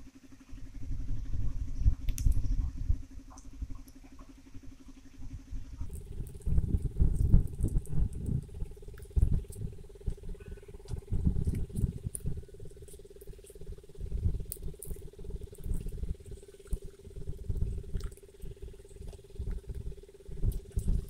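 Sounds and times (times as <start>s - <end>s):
steady low hum: 0.0s - 21.0s
wind rumble on microphone: 0.0s - 21.0s.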